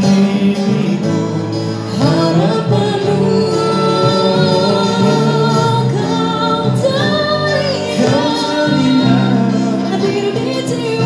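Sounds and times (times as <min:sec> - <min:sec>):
guitars: 0:00.0 - 0:11.0
keyboard: 0:00.0 - 0:11.0
woman singing into microphone: 0:00.0 - 0:11.0.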